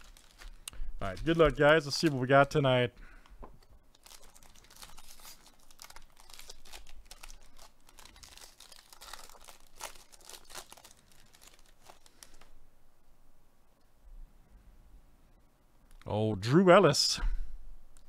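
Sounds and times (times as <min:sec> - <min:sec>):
plastic wrapper crinkling and tearing: 0:00.0 - 0:02.6, 0:03.8 - 0:12.5.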